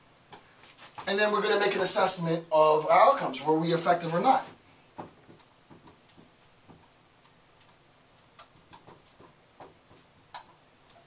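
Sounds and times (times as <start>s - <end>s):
marker writing on whiteboard: 3.8s - 11.0s.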